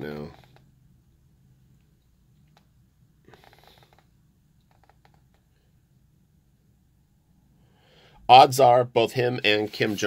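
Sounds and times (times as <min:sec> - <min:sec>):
soft rustle: 0:09.4 - 0:10.0.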